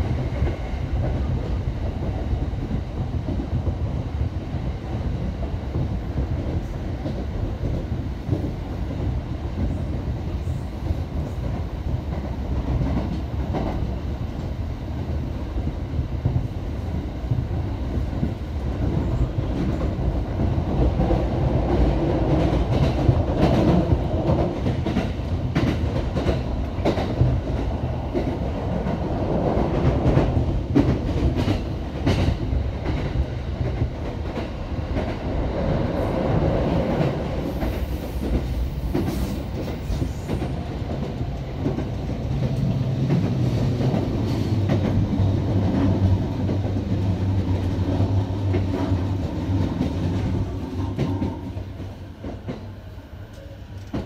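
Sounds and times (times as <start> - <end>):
train rolling rumble: 0.0 - 54.0.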